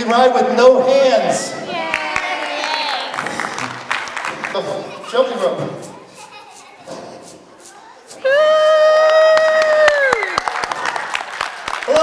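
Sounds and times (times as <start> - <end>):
audience clapping: 1.8 - 5.1, 8.8 - 12.0.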